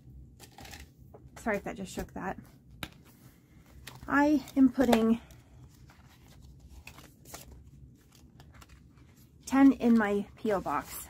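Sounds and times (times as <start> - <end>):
plastic pages rustling: 2.8 - 11.0.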